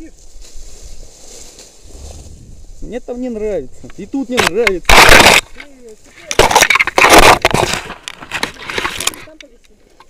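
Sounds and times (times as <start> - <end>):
rustling: 0.0 - 10.0
wind rumble on microphone: 0.1 - 4.0
man talking: 2.8 - 5.2.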